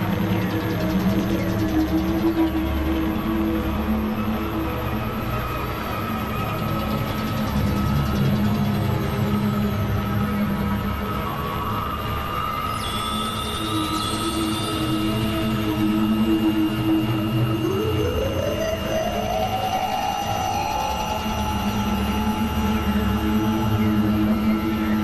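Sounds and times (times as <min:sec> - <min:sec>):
electronic drone music: 0:00.0 - 0:25.0.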